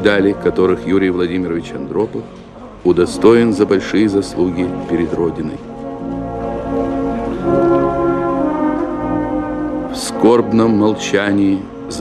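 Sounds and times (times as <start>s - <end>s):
brass band playing funeral march: 5.6s - 12.0s.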